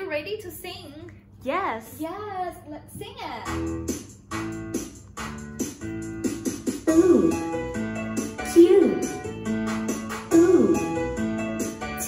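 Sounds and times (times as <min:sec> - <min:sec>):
children's chant with backing music: 0:06.9 - 0:11.2
person speaking: 0:08.4 - 0:09.3.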